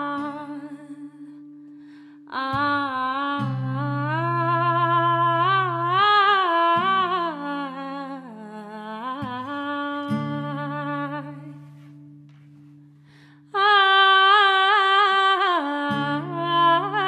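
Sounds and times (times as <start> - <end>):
woman singing wordless melody: 0.0 - 12.1, 13.5 - 17.0
acoustic guitar chords: 0.0 - 13.5, 14.7 - 17.0.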